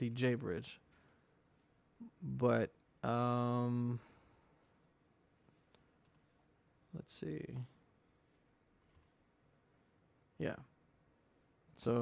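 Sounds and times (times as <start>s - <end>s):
computer mouse click: 5.7s - 6.3s, 8.8s - 9.2s.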